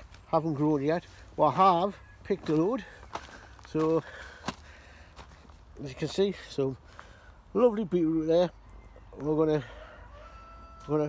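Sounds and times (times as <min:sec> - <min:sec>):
man speaking: 0:00.3 - 0:03.0, 0:05.8 - 0:06.8, 0:07.5 - 0:08.5.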